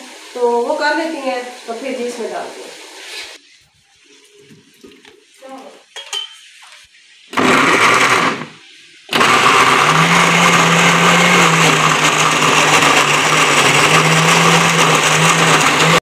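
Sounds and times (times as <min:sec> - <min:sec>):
blender motor grinding: 0:07.3 - 0:16.0.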